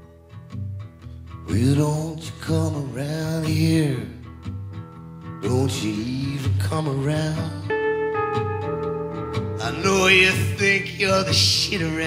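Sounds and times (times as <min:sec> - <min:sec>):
live country-rock band: 0:01.4 - 0:12.0.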